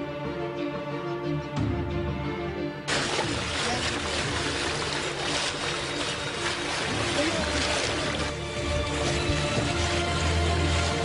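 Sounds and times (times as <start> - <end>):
sea water rushing along boat: 2.9 - 11.0.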